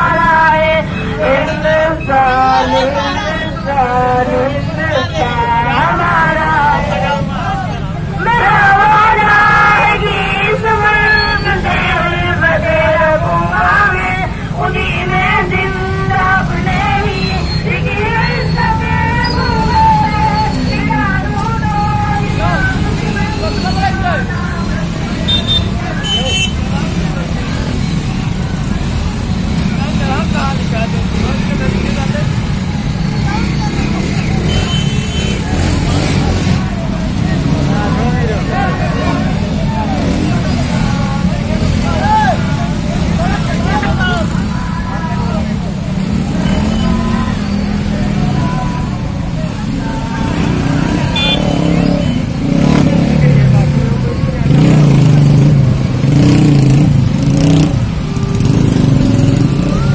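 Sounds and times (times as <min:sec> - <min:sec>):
people calling out: 0:00.0 - 0:27.0, 0:36.4 - 0:53.2, 0:56.1 - 0:59.9
motorcycle engines rumbling: 0:00.0 - 0:59.9.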